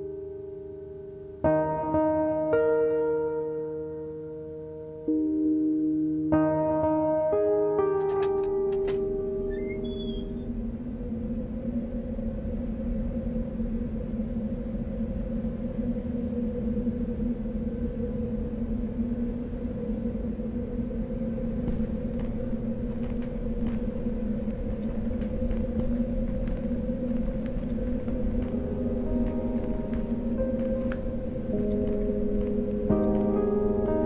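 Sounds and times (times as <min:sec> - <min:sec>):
low rumble: 0:10.0 - 0:34.0
droning hum: 0:10.4 - 0:34.0.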